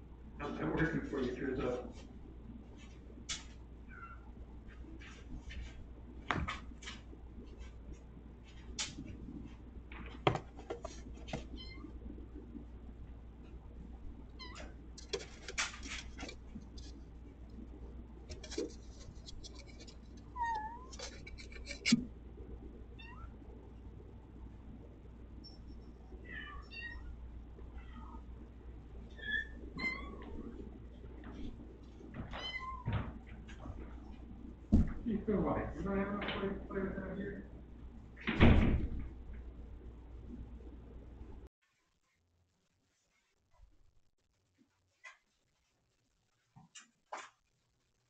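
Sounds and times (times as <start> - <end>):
cat meowing: 26.2 - 27.1.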